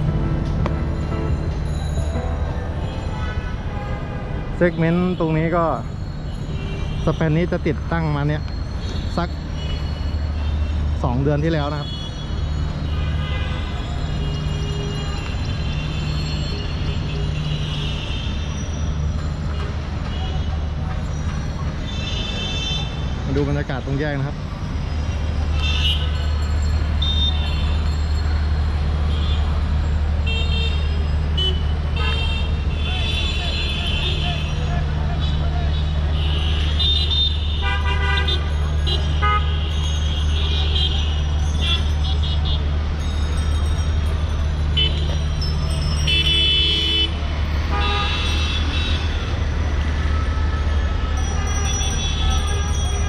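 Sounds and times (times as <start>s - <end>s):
low traffic hum: 0.0s - 53.0s
vehicle horns honking: 2.1s - 5.5s, 11.8s - 18.7s, 25.5s - 26.2s, 30.2s - 42.7s, 44.7s - 53.0s.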